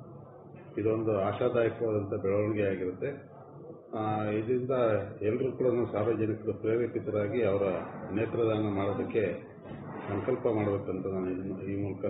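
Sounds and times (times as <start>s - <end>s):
man talking: 0.7s - 3.2s, 3.9s - 12.0s.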